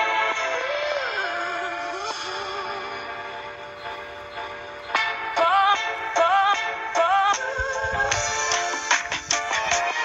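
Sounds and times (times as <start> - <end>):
hip-hop dance music: 0.0 - 10.0.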